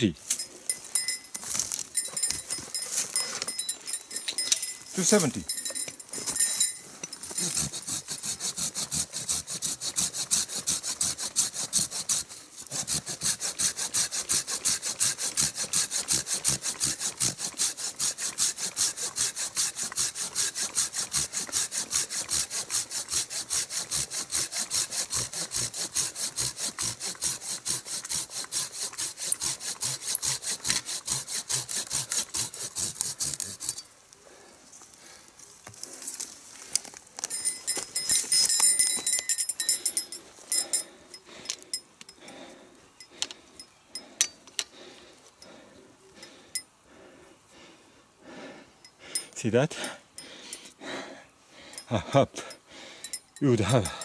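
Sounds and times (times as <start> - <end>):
pull saw cutting branch: 0.0 - 33.9, 35.8 - 42.2, 53.4 - 54.0.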